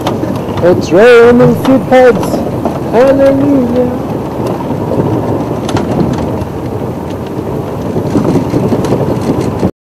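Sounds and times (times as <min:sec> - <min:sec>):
vehicle engine and road rumble: 0:00.0 - 0:09.7
wind buffeting microphone: 0:00.0 - 0:09.7.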